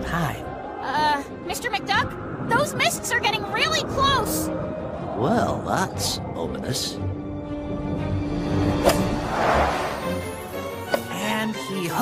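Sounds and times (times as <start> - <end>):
background music: 0.0 - 12.0
whoosh of ball flying: 8.8 - 10.2.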